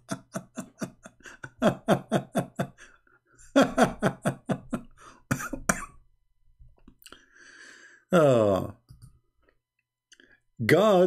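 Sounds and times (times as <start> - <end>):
man laughing: 0.0 - 5.8.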